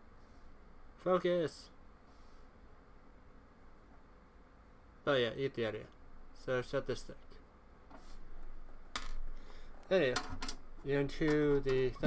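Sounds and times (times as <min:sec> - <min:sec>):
light handling noise: 0:10.0 - 0:12.0.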